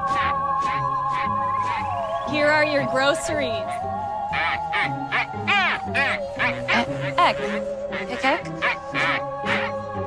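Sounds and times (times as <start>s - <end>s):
background music with held notes: 0.0s - 10.0s
duck-like ack-ack chatter: 0.1s - 1.9s, 4.3s - 9.9s.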